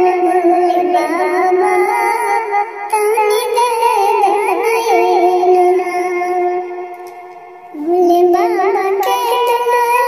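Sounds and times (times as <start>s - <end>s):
pitch-shifted woman singing devotional song: 0.0s - 10.0s.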